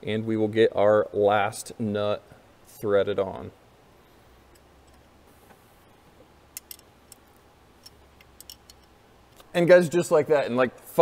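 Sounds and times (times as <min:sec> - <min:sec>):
low steady hum: 0:00.0 - 0:11.0
metallic clicks of hand tool: 0:06.6 - 0:07.2.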